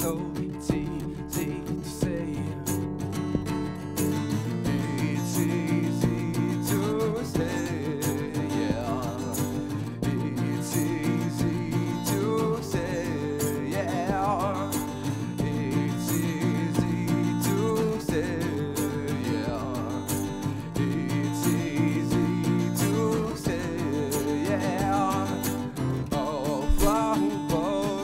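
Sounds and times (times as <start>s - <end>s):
person singing wordlessly: 0.0s - 3.4s, 4.2s - 28.0s
acoustic guitar strumming: 0.0s - 28.0s.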